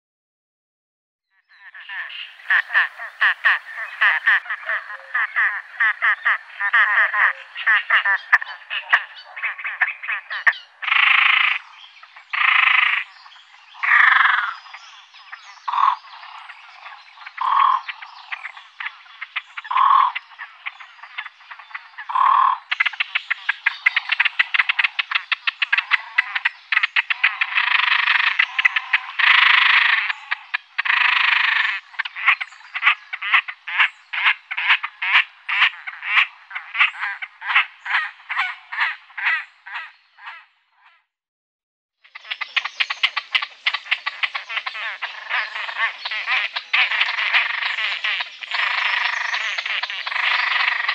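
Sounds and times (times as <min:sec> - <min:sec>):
grebe croaking calls: 0:01.5 - 0:13.1, 0:13.7 - 0:41.0, 0:42.0 - 0:50.9.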